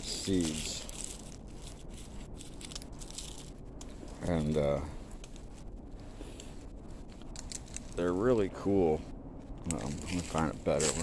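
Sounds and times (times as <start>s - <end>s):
dry seed pods crinkling in hand: 0.0s - 8.6s, 9.6s - 11.0s.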